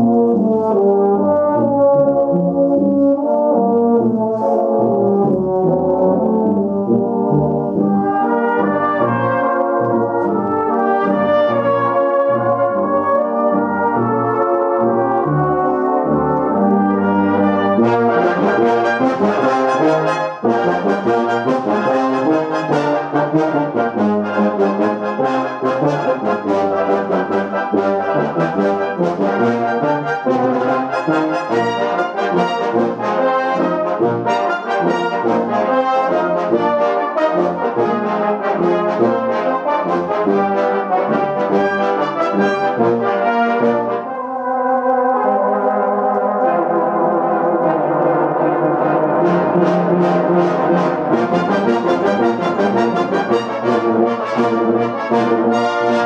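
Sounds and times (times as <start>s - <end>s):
orchestra playing chords: 0.0s - 56.0s.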